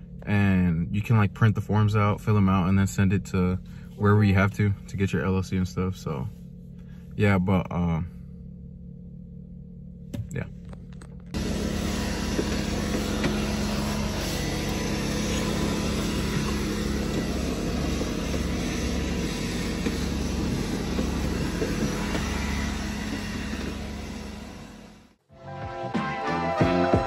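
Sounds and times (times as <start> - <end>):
constant low hum: 0.0 - 25.3
motor vehicle running: 9.8 - 25.2.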